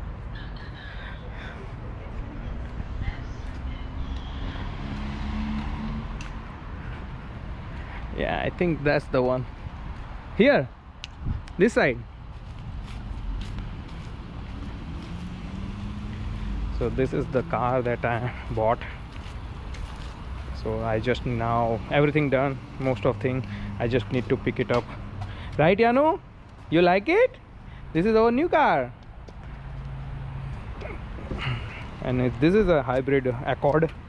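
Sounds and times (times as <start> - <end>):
road traffic rumble: 0.0 - 34.0
footsteps on concrete: 12.3 - 15.4, 19.0 - 20.6.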